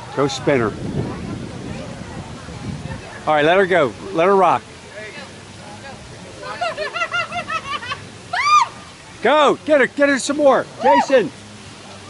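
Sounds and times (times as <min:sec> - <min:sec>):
high-pitched laughter: 0:06.6 - 0:08.6.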